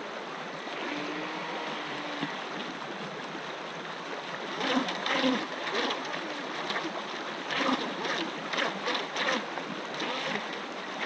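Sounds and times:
stream rushing over stones: 0:00.0 - 0:11.0
water splashes: 0:00.6 - 0:11.0.

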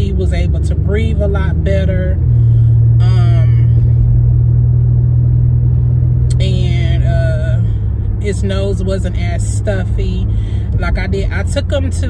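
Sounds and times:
car interior drone: 0:00.0 - 0:12.0.

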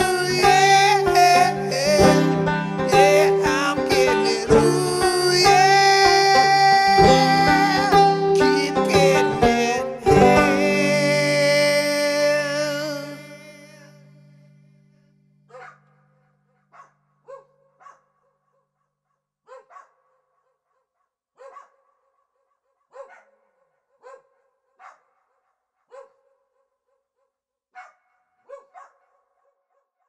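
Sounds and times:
song: 0:00.0 - 0:14.8
small dog barking: 0:15.5 - 0:16.0, 0:16.7 - 0:18.4, 0:19.5 - 0:20.2, 0:21.4 - 0:22.1, 0:22.9 - 0:26.7, 0:27.8 - 0:29.9.

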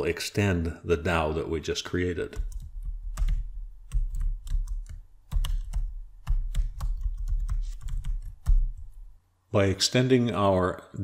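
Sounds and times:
typing on computer keyboard: 0:02.4 - 0:09.0.

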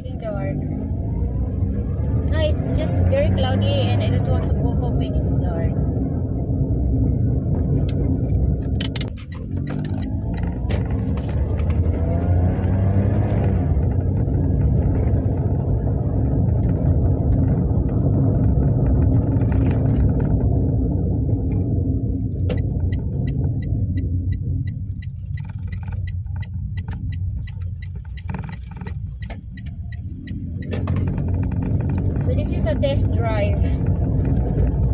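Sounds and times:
car engine accelerating: 0:00.0 - 0:34.9
road noise inside car: 0:00.0 - 0:34.9
regular light ticking: 0:22.4 - 0:33.7.

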